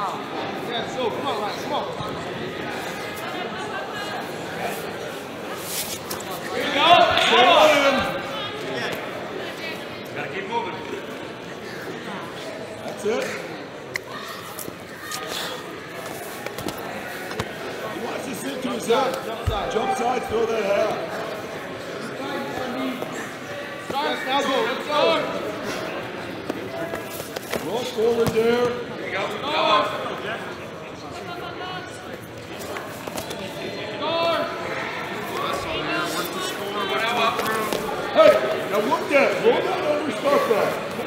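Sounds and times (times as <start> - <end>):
echoing background chatter: 0.0 - 41.0.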